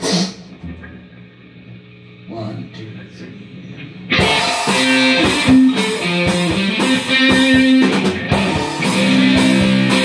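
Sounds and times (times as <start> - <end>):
low amplifier hum: 0.0 - 10.0.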